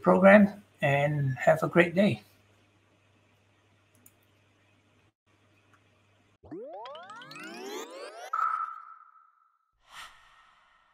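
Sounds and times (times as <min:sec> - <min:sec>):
rising cluster of tones: 0:06.4 - 0:09.5.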